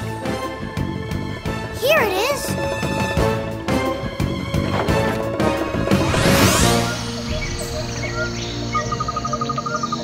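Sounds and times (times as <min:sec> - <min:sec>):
insects chirping: 0:06.7 - 0:10.0.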